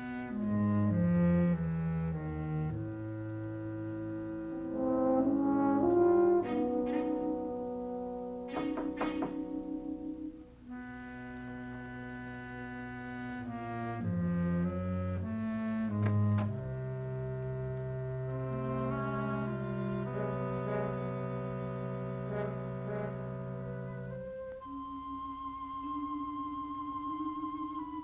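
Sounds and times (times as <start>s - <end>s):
suspenseful brass and woodwind music: 0.0s - 28.0s.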